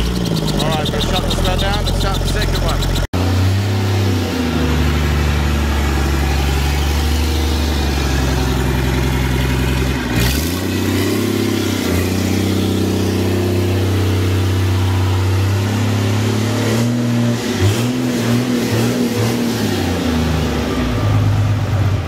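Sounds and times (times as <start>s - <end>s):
diesel engine running and revving: 0.0s - 22.0s.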